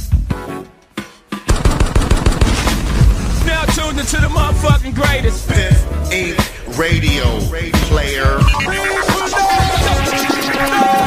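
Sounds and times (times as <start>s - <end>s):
machine-gun fire: 1.5s - 6.6s.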